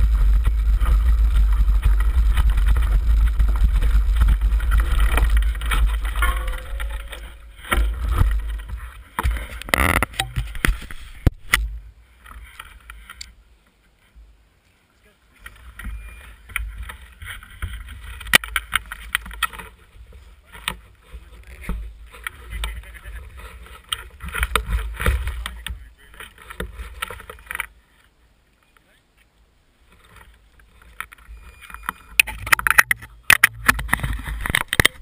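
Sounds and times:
tyres crunching over gravel: 0:00.0 - 0:11.2
wind rumble on microphone: 0:00.0 - 0:13.1
bikes rattling: 0:00.0 - 0:13.3, 0:15.3 - 0:28.1, 0:29.8 - 0:35.0.

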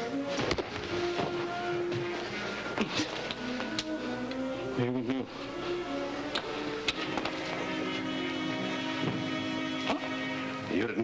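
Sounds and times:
dramatic score sustained notes: 0:00.8 - 0:11.0.

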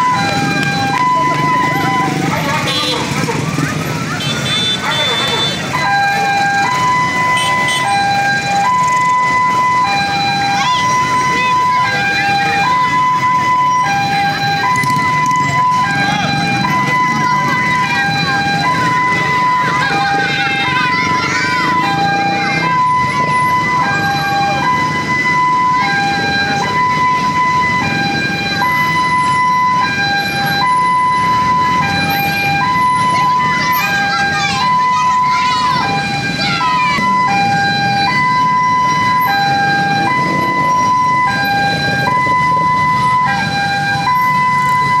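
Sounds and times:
crowd voices: 0:00.0 - 0:45.0
motorcycle engines rumbling: 0:00.0 - 0:45.0
two-tone siren: 0:00.0 - 0:45.0.

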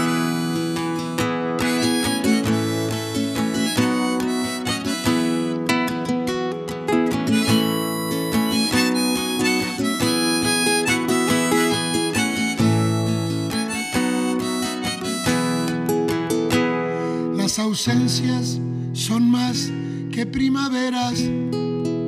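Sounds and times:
harmonica melody: 0:00.0 - 0:17.4
acoustic guitar: 0:00.0 - 0:22.0.

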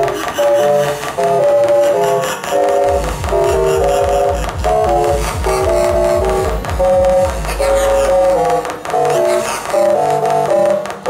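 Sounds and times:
fast low electronic beat: 0:00.0 - 0:10.8
synthesizer chords: 0:00.0 - 0:11.0.

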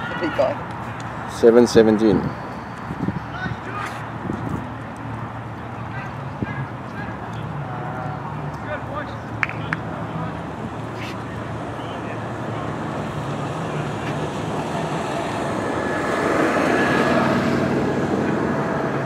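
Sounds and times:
distant voices: 0:00.0 - 0:19.0.

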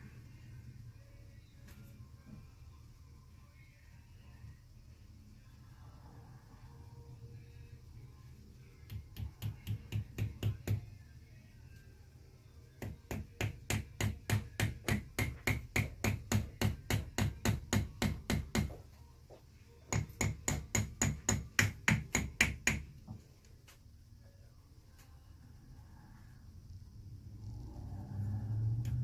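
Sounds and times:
small hammer tapping: 0:08.9 - 0:10.9, 0:12.8 - 0:18.8, 0:19.9 - 0:22.9.

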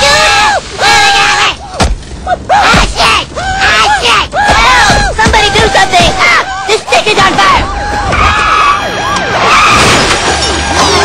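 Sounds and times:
high screams: 0:02.5 - 0:11.0.

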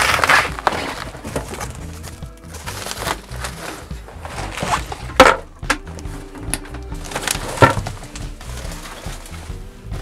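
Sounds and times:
cardboard rustling and scraping: 0:00.0 - 0:05.4, 0:06.0 - 0:10.0
quiet background music: 0:00.0 - 0:10.0.

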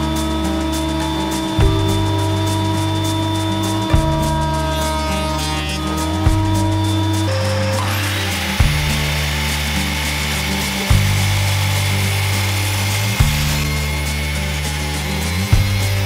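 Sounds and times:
background music with bass line: 0:00.0 - 0:16.0
mitre saw cutting wood: 0:04.6 - 0:16.0.

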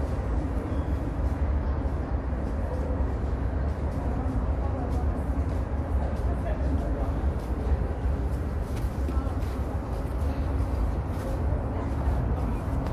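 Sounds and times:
murmur of voices: 0:00.0 - 0:12.9
steady low rumble: 0:00.0 - 0:12.9.

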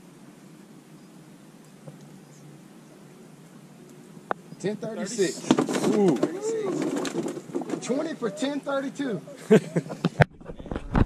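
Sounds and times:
men's voices holding a note: 0:04.6 - 0:10.1
men's voices exclaiming ooh: 0:05.0 - 0:06.9, 0:07.8 - 0:09.8.

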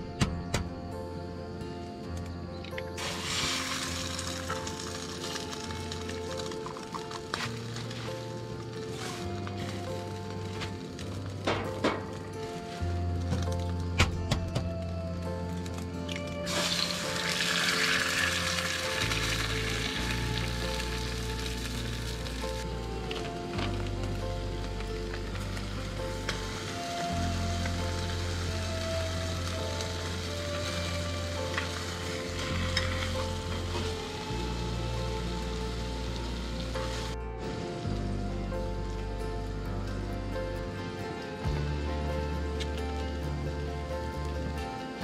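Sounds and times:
background music with bass line: 0:00.0 - 0:45.0
food sizzling in pans: 0:03.0 - 0:11.9, 0:16.4 - 0:37.2.

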